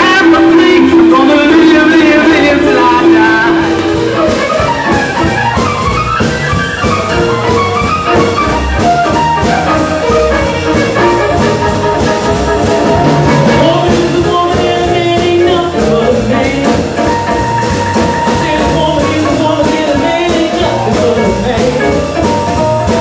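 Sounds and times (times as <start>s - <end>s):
bass: 0.0s - 23.0s
drum kit: 0.0s - 23.0s
guitar: 0.0s - 23.0s
keyboard: 0.0s - 23.0s
saxophone lead melody: 0.0s - 23.0s.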